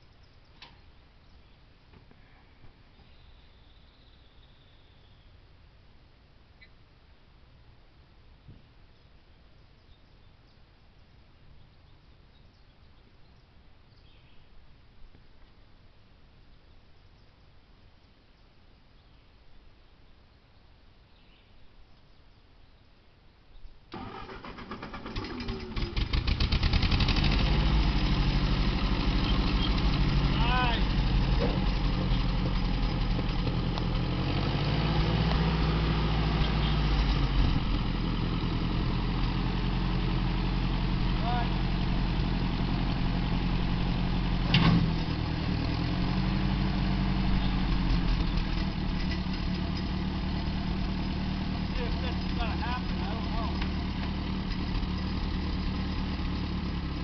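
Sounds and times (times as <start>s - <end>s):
tractor engine cranking and running: 23.9s - 57.0s.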